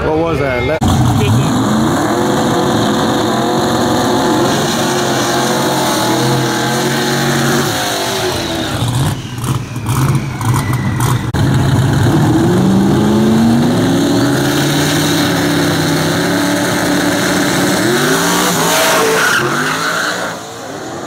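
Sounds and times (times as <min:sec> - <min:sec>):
race car engines revving: 0:00.0 - 0:21.0.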